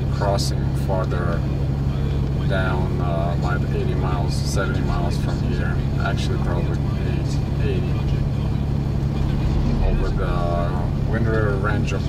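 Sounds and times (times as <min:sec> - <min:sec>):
engine and road drone in car: 0:00.0 - 0:12.0
man speaking: 0:00.0 - 0:12.0.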